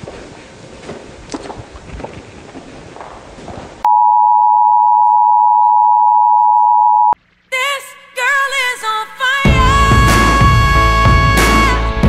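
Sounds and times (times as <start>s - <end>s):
steady electronic beep tone: 3.9s - 7.2s.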